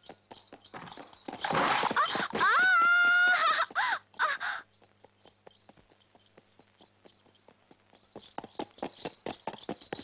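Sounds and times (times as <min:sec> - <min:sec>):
crows cawing: 0:02.4 - 0:04.6.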